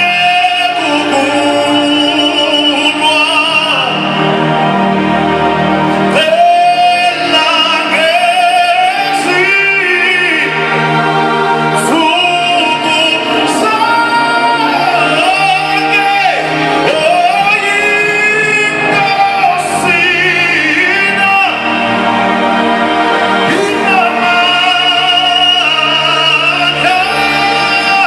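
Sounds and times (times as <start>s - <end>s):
lead voice singing: 0.0s - 28.0s.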